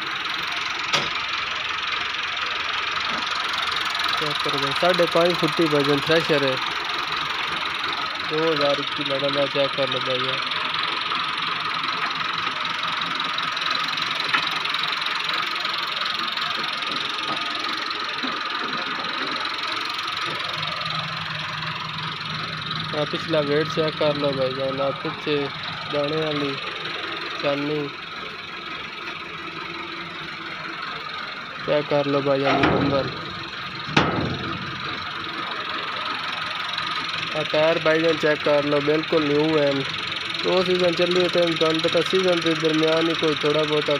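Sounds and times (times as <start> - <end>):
constant high whine: 0.0 - 43.9
man speaking: 4.2 - 6.6, 8.3 - 10.4, 22.9 - 26.6, 27.4 - 27.9, 31.6 - 33.2, 37.3 - 43.9
machinery rushing noise: 31.7 - 36.7.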